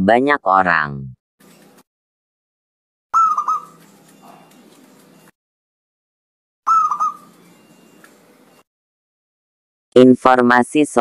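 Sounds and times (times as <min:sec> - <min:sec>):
dove cooing: 0:03.2 - 0:05.2, 0:06.7 - 0:08.1.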